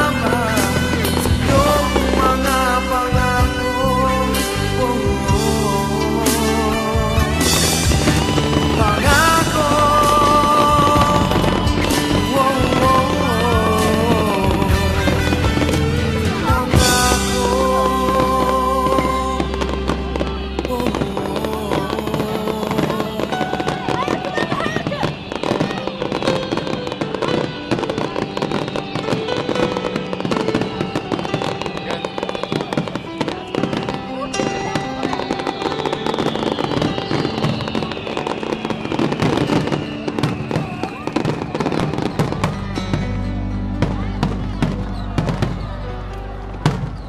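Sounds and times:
fireworks bursting and crackling: 0.0 - 47.0.

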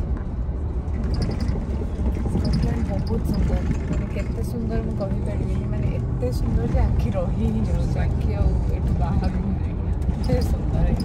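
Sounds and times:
coach engine and road rumble: 0.0 - 11.0.

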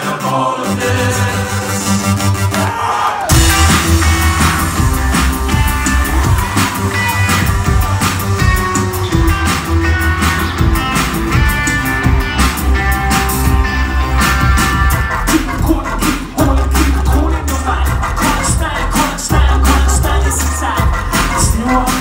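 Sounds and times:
drums: 0.0 - 22.0
rock band playing live: 3.3 - 22.0.

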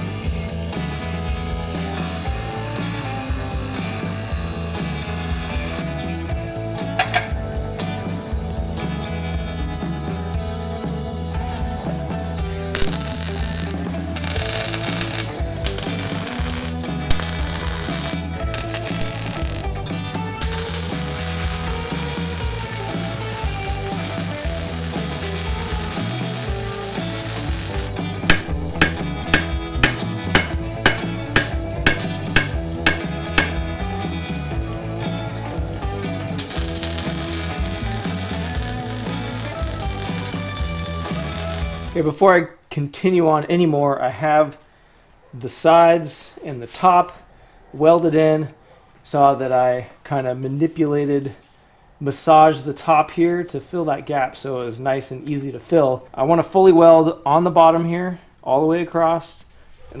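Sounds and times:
rock music: 0.0 - 42.2
arc welding crackling: 12.6 - 33.7, 36.2 - 42.1
bench grinder on steel: 12.8 - 19.7, 20.4 - 33.6, 36.4 - 42.0
hammer striking metal: 28.2 - 33.6.

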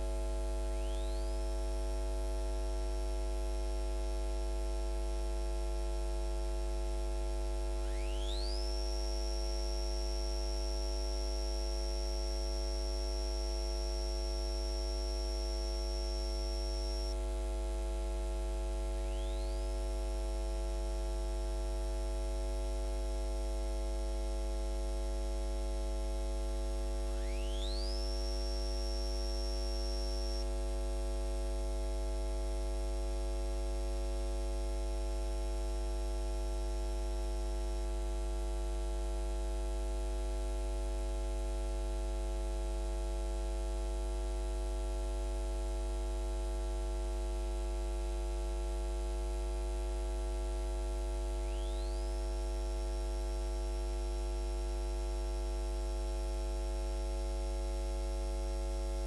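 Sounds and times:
electrical mains hum: 0.6 - 1.4, 7.7 - 20.6, 26.4 - 30.7, 51.1 - 54.2.

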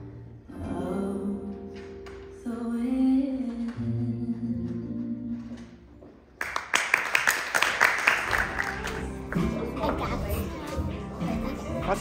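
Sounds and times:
slow sung song: 0.0 - 6.0
audience applause: 6.4 - 10.2.

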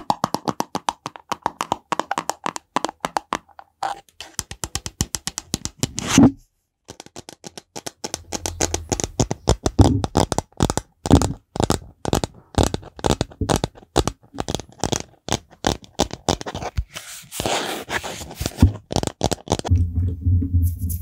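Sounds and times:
fingernails tapping plastic bottle: 0.0 - 6.0, 6.9 - 16.6.

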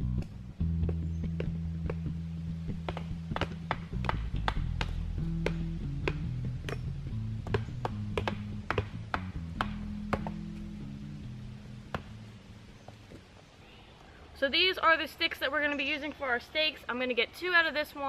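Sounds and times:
background music with low notes: 0.0 - 13.1
hatchet chopping wood: 2.8 - 10.4.

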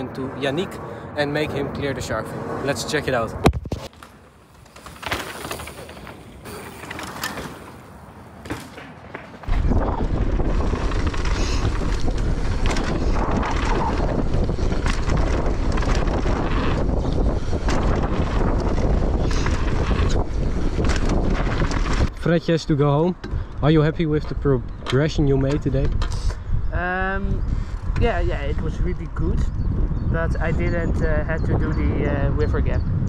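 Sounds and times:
bike clicks and rattles: 3.5 - 22.3, 23.2 - 26.5
wind rush on microphone: 9.4 - 33.0.

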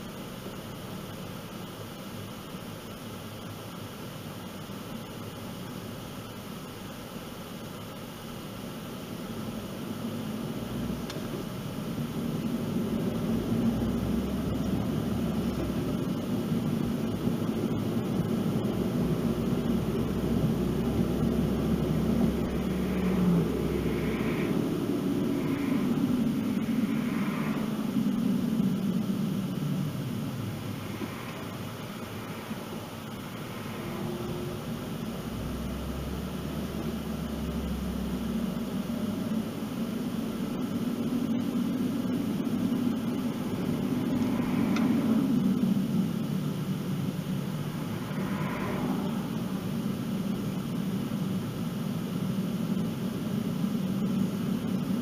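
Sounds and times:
tyre and engine hum in car: 0.0 - 55.0.

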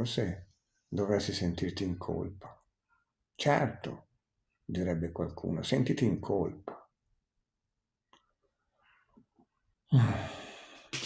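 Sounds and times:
man sighing loudly: 9.9 - 10.8.

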